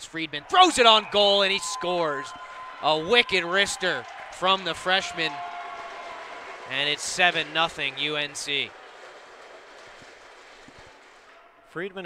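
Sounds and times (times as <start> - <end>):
ice rink background noise: 0.2 - 11.9.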